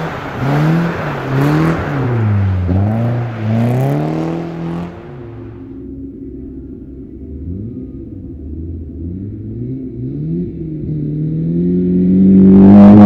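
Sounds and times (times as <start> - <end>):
rally car engine at full throttle: 0.0 - 13.0.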